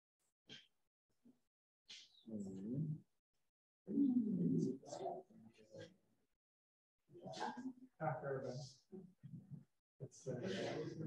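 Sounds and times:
low voice murmuring: 0:02.3 - 0:03.0, 0:03.9 - 0:05.9, 0:10.0 - 0:11.0.

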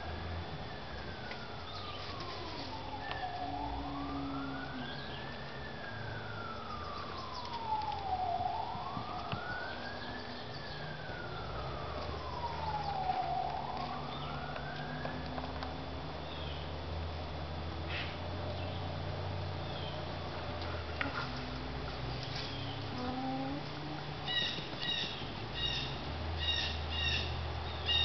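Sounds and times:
siren wailing: 0:00.0 - 0:16.6, 0:20.6 - 0:28.0
low steady rumble: 0:00.0 - 0:26.5.

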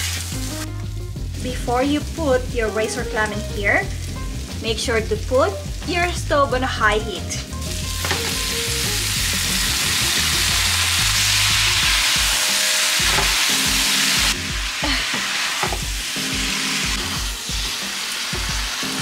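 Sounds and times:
clam pieces sizzling in oil: 0:00.0 - 0:06.3, 0:07.0 - 0:19.0.

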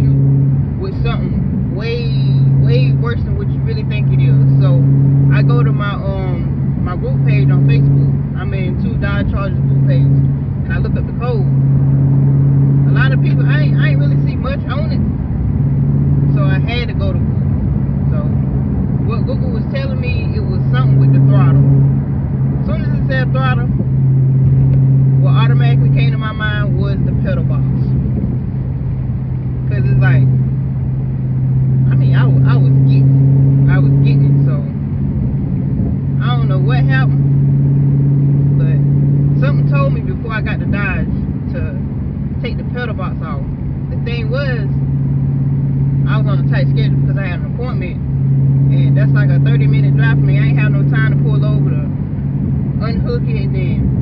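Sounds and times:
car engine drone in cabin: 0:00.0 - 0:54.0
road noise: 0:00.0 - 0:54.0.

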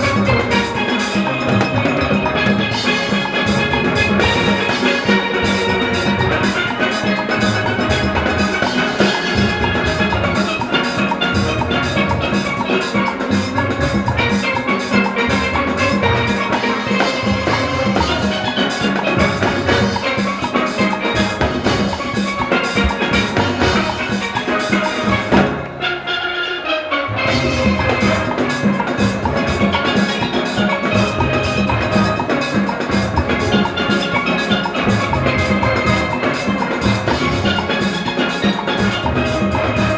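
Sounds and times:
drums and percussion: 0:00.0 - 0:39.9
steelpans playing melody: 0:00.0 - 0:39.9.

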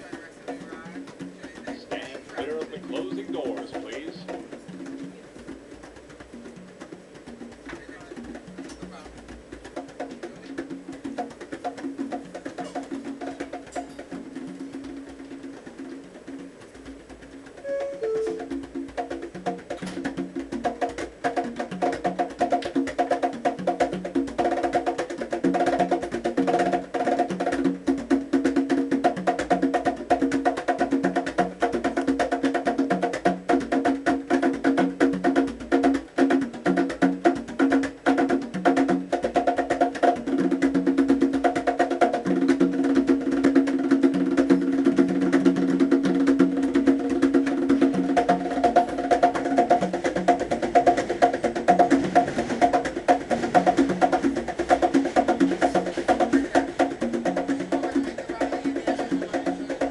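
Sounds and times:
conga drums played by hand: 0:00.0 - 0:59.9.

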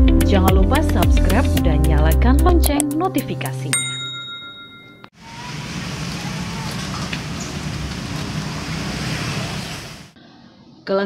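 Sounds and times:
bell-like notification ding: 0:03.8 - 0:05.1
street traffic: 0:03.8 - 0:10.2.

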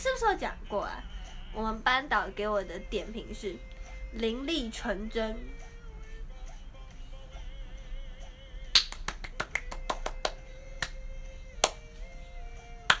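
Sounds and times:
quiet background music: 0:00.0 - 0:13.0
sharp snapping clicks: 0:08.8 - 0:11.0.

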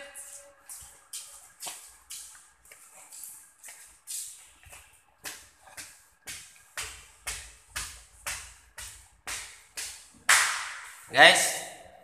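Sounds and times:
scuffing footsteps: 0:00.0 - 0:11.1.

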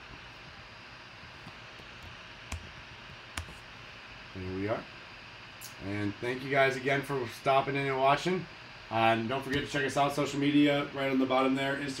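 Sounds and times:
computer mouse clicks: 0:01.4 - 0:02.7, 0:03.4 - 0:03.6.

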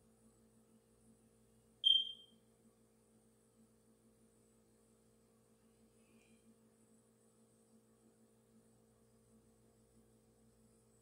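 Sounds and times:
faint low hum: 0:00.0 - 0:11.0
short high-pitched beep: 0:01.8 - 0:02.3.

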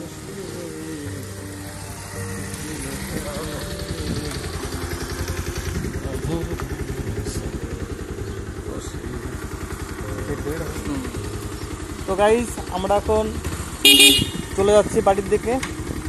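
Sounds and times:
motorcycle engine running: 0:00.0 - 0:16.0.

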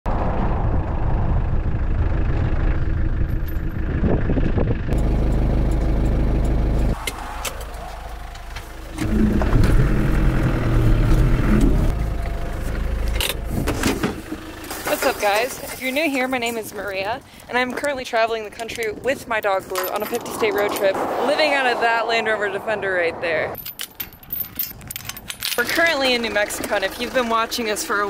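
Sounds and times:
vehicle engine on dirt track: 0:00.1 - 0:18.9, 0:19.7 - 0:23.7, 0:25.5 - 0:28.0.

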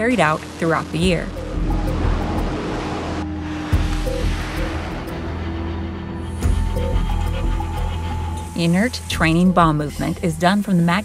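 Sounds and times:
steady rushing noise: 0:00.0 - 0:09.2
background music: 0:00.0 - 0:11.0.

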